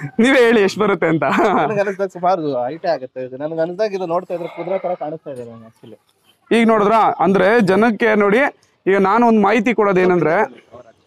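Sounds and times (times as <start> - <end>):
men talking: 0.0 - 11.0
goat bleating: 4.4 - 5.8.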